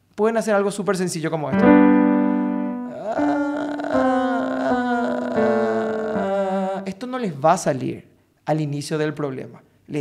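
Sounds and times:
man singing vocal warm-up: 2.7s - 7.2s.

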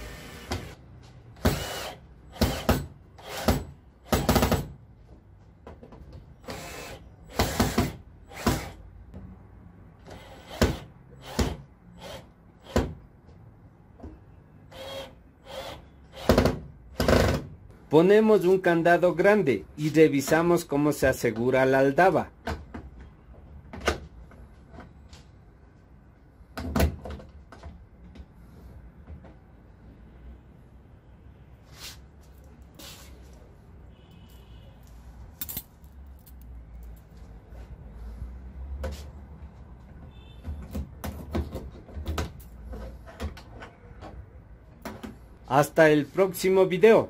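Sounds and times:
keys jingling: 35.3s - 37.2s.

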